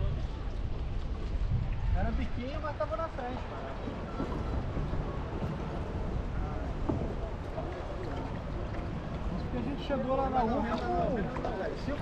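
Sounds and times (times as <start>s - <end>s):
wind on microphone: 0.0s - 12.0s
water lapping against hull: 3.4s - 12.0s.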